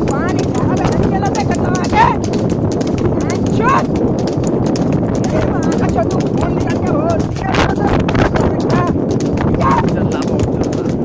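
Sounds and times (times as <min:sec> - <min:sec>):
hooves trotting on pavement: 0:00.0 - 0:11.0
wooden cart rattling: 0:00.0 - 0:11.0.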